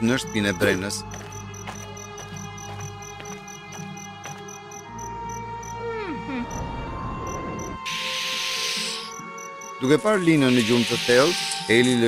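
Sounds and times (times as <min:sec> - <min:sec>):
crickets chirping: 0:00.0 - 0:11.7.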